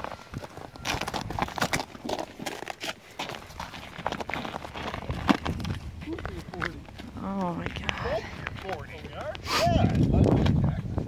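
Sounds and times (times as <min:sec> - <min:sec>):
footsteps crunching on icy pavement: 0:00.0 - 0:10.7.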